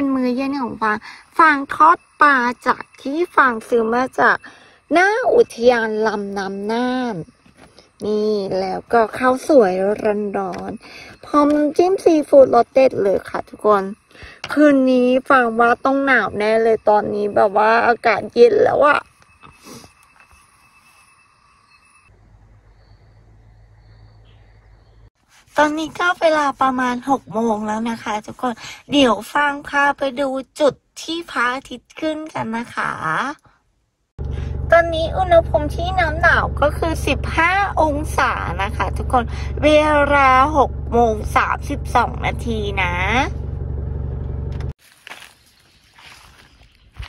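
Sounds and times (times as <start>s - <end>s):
insects calling: 0.0s - 25.1s
car engine hum inside cabin: 34.2s - 44.8s
low steady rumble: 34.2s - 44.8s.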